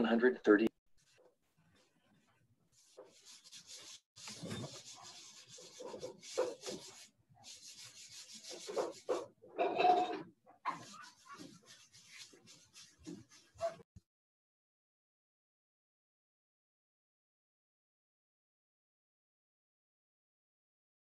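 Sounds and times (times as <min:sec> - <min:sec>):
scratchy rustling and rubbing: 0:01.0 - 0:10.0, 0:10.6 - 0:13.9.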